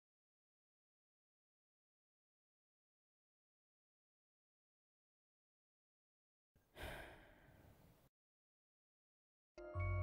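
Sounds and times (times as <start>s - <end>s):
person sighing: 6.7s - 7.8s.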